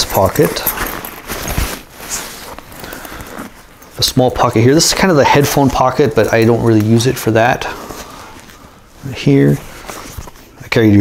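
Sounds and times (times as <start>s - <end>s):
fabric backpack rustling: 0.0s - 10.6s.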